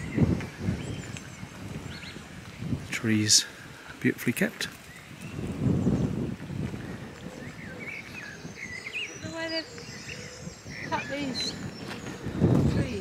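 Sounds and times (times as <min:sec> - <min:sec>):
footsteps on gravel: 0:00.0 - 0:03.0, 0:03.9 - 0:08.4, 0:11.0 - 0:13.0
birds chirping and whistling: 0:00.0 - 0:03.9, 0:04.6 - 0:13.0.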